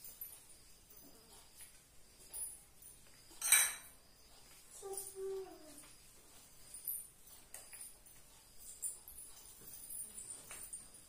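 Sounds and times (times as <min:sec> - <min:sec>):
sharp clink: 0:03.3 - 0:04.0.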